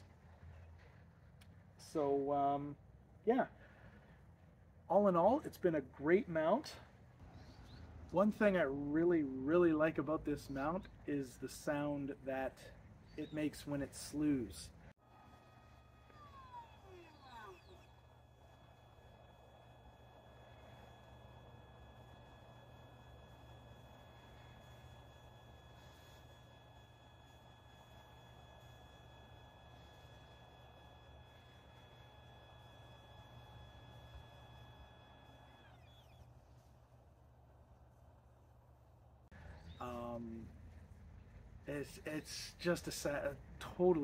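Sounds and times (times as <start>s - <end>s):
motor whine: 0.0s - 44.0s.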